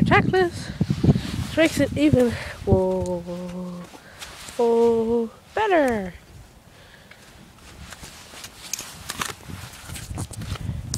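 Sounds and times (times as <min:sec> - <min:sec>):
hooves on dirt and snow: 0:00.8 - 0:05.8.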